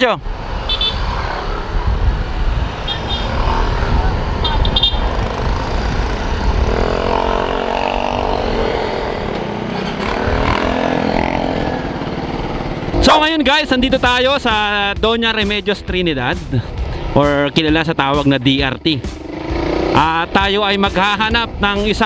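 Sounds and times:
wind rumble on microphone: 0.2 - 10.9
motorcycle engine running: 1.8 - 15.2, 16.4 - 22.0.

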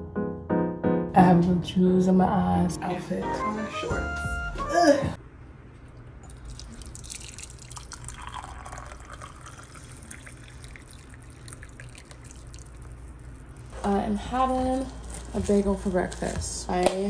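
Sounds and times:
water pouring into a mug: 6.2 - 13.7.

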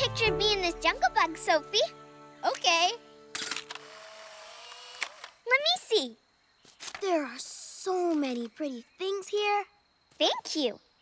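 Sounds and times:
camera printing whir: 3.4 - 5.4
camera shutter click: 3.4 - 5.4.

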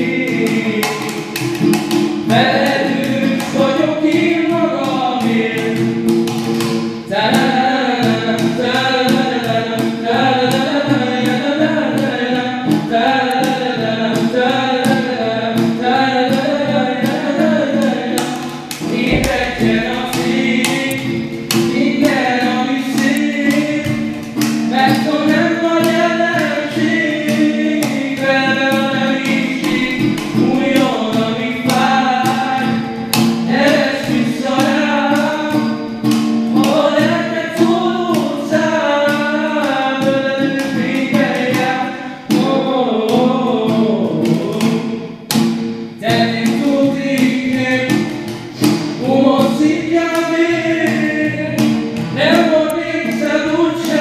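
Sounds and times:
acoustic guitar: 0.0 - 54.0
beat on metal milk can: 0.0 - 54.0
two men singing pop song: 0.0 - 54.0.

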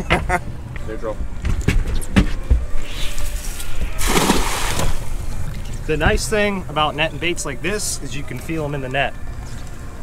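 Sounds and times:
net splashing onto water: 3.5 - 5.2.

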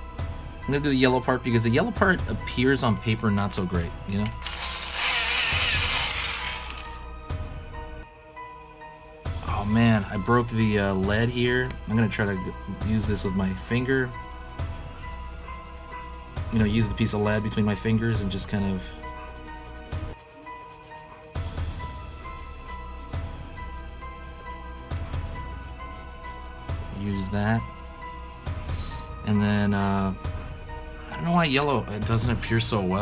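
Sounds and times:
colored pencil shading on paper: 0.0 - 2.9, 12.0 - 32.4
background music: 0.0 - 33.0.

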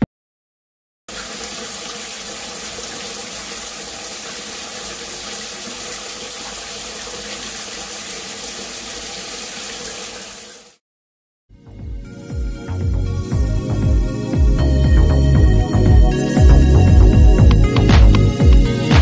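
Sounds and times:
shower water running: 1.1 - 10.8.

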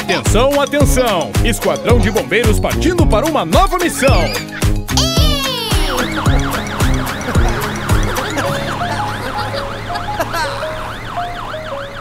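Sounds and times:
children's music with drums: 0.0 - 8.6
cartoon siren wailing: 5.0 - 6.9.

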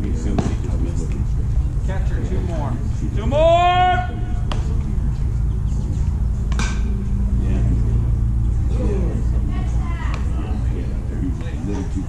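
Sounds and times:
faint distant voices: 0.0 - 12.0
steady low rumble: 0.0 - 12.0
sharp smack: 6.5 - 6.8.

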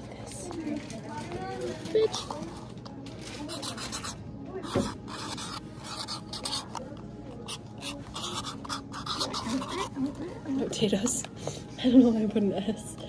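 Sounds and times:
pen scratching on cardboard: 3.5 - 6.8, 7.4 - 9.9.

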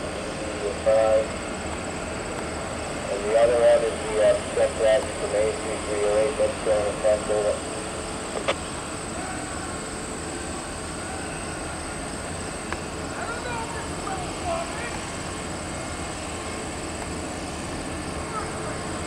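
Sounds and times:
diesel engines idling: 0.0 - 19.0
faint distant voices: 3.0 - 7.9, 13.0 - 15.4, 17.9 - 19.0.

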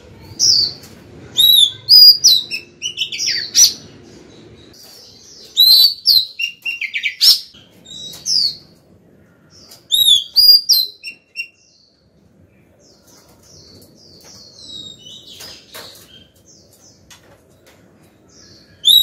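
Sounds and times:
bird singing whistled notes: 5.4 - 8.6, 9.9 - 11.8, 18.8 - 19.0.

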